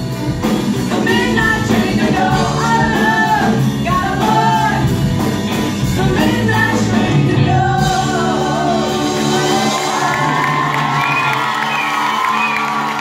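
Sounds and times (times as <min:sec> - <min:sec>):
live soul band with strings: 0:00.0 - 0:13.0
audience whooping and cheering: 0:09.2 - 0:13.0.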